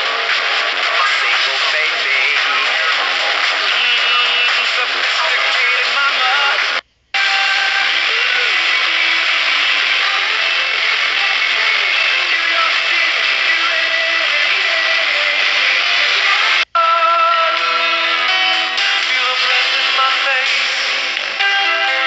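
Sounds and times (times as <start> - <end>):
radio static hiss: 0.0 - 16.7, 19.0 - 22.0
faint music and singing: 0.0 - 22.0.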